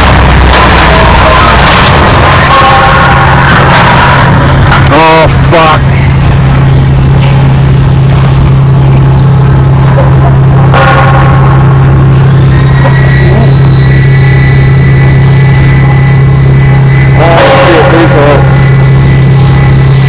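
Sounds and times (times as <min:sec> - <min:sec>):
low mechanical drone: 0:00.0 - 0:20.0
rushing noise: 0:00.0 - 0:20.0.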